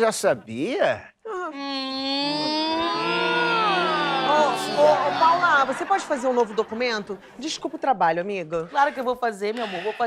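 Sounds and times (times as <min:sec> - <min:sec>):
group of voices saying ohhh: 0:02.1 - 0:05.8.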